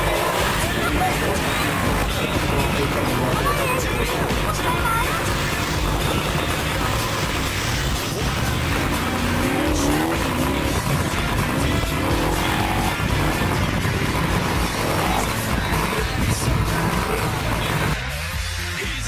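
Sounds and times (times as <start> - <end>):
snow buggy engine revving: 0.0 - 19.0.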